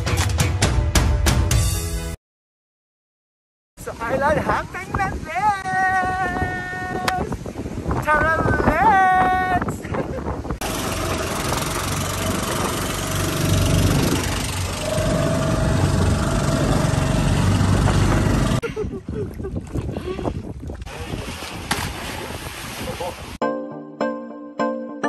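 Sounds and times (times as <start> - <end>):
wind on microphone: 3.8 - 23.4
boat engine running: 10.6 - 18.6
rushing water: 19.0 - 23.4.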